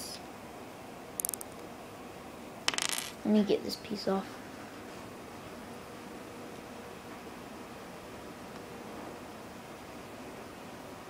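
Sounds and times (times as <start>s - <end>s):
plastic toy bricks clicking: 1.2s - 1.5s.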